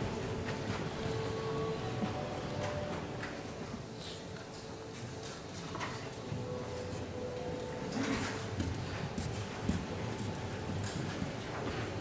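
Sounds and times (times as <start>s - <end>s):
footsteps: 8.3s - 12.0s.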